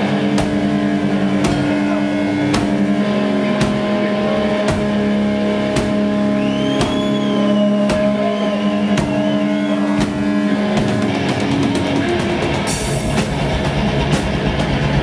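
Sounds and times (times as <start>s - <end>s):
distorted electric guitars: 0.0s - 15.0s
drum hits: 0.0s - 15.0s.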